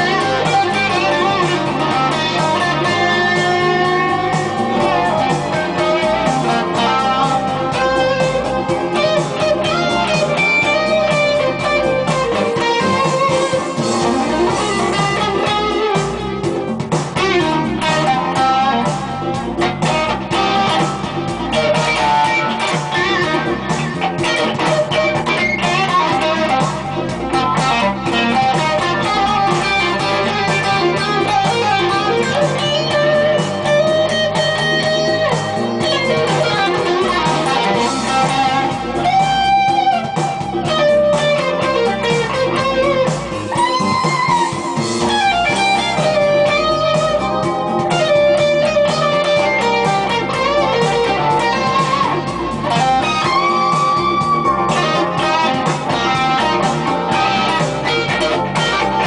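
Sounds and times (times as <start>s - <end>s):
overdriven electric guitar lead: 0.0s - 59.0s.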